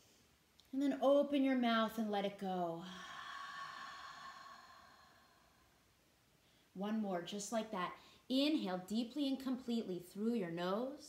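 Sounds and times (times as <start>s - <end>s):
woman exhaling breathy sigh: 2.8s - 5.8s.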